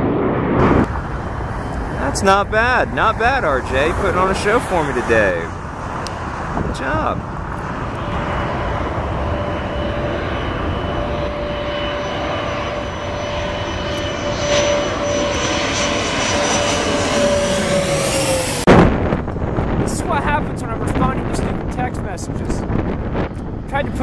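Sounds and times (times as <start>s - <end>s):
sudden loud noise burst: 0.0s - 5.6s, 16.6s - 19.6s
jet engine whine: 0.0s - 24.0s.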